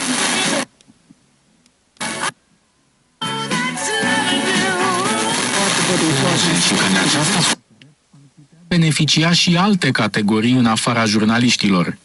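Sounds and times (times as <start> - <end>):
hissy radio music and voice: 0.0 - 0.8, 3.6 - 12.0
news-reading voice: 5.5 - 12.0
faint radio voice: 5.6 - 8.8.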